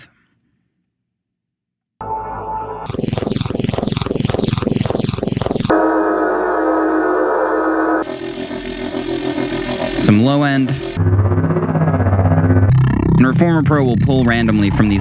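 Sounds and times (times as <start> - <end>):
buzzing drone: 2.0 - 15.0.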